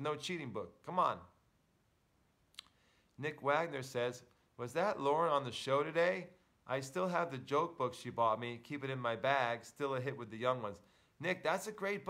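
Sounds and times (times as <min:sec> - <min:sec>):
man speaking: 0:00.0 - 0:01.4, 0:03.2 - 0:12.0.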